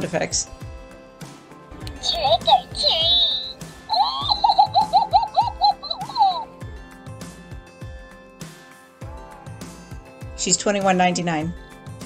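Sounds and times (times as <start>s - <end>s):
high voice cackling: 1.9s - 6.5s.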